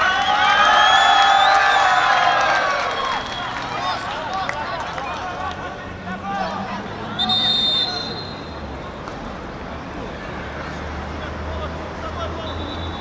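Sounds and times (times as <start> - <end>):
football spectators shouting: 0.0 - 13.0
chatter: 2.8 - 12.9.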